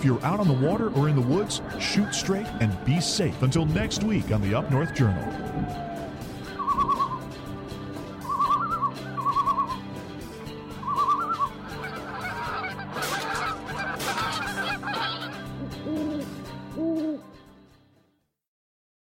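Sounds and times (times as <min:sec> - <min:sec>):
music bed: 0:00.0 - 0:18.1
lower hooting calls: 0:04.4 - 0:07.3, 0:08.2 - 0:09.9, 0:10.8 - 0:12.8
quavering bird calls: 0:08.1 - 0:09.9, 0:10.7 - 0:17.2.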